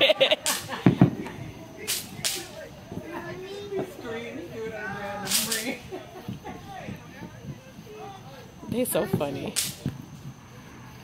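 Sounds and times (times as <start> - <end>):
faint voices talking: 0.0 - 11.0
fireworks hissing cracks: 0.0 - 11.0
firework thump: 0.4 - 4.0, 8.8 - 10.4.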